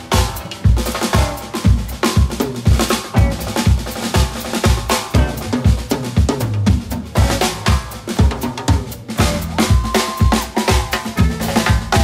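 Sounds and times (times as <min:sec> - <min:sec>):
kick and snare drum beat: 0:00.0 - 0:12.0
live blues band playing: 0:00.0 - 0:12.0.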